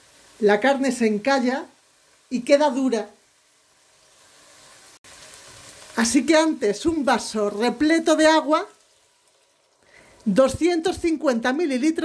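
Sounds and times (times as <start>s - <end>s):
meat sizzling in a pot: 0.0s - 12.0s.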